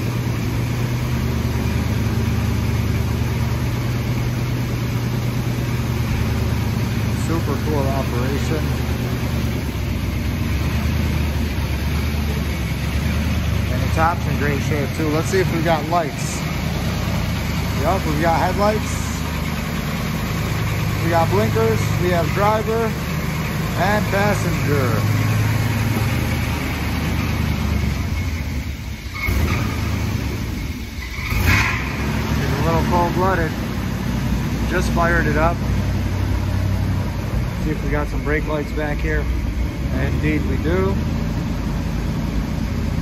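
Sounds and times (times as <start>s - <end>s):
car engine idling: 0.0s - 43.0s.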